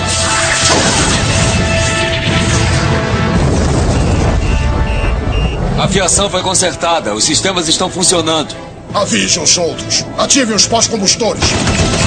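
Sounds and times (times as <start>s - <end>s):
orchestral music: 0.0s - 12.0s
low rumble: 0.9s - 6.8s.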